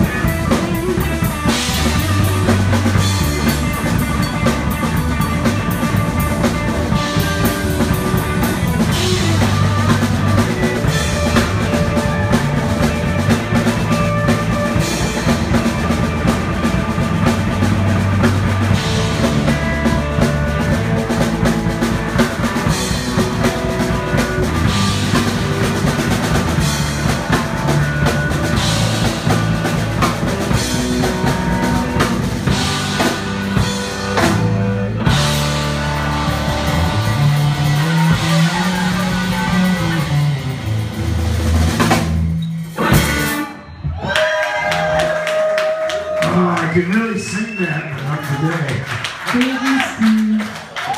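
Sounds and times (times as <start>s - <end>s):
electric guitar: 0.0s - 46.3s
bass guitar: 0.0s - 50.9s
drum kit: 0.0s - 50.9s.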